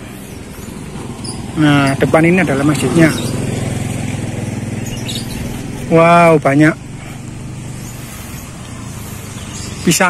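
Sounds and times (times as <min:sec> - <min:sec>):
small motorcycle engine running: 0:00.0 - 0:10.0.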